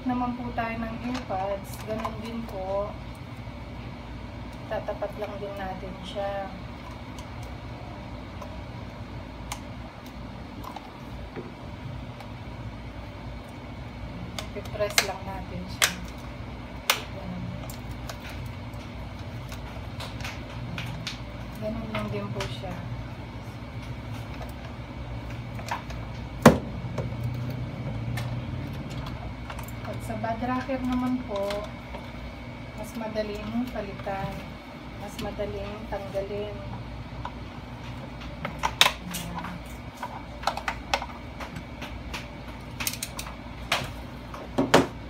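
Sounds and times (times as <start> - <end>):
low background hum: 0.0 - 45.0.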